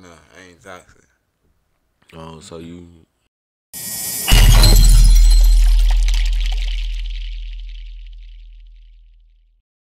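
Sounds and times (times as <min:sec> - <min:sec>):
falling glass shards tinkling: 0:03.8 - 0:08.0
deep low boom: 0:04.3 - 0:08.5.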